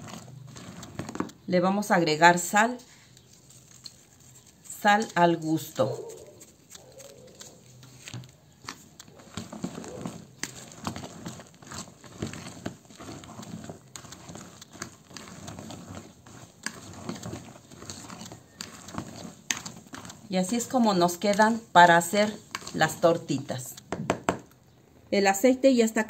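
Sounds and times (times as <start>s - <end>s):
wet squishing of batter mixing: 0.0s - 24.8s.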